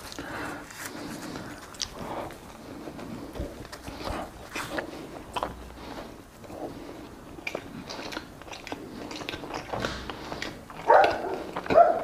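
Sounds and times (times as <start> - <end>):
man chewing with wet smacking: 0.0 - 12.0.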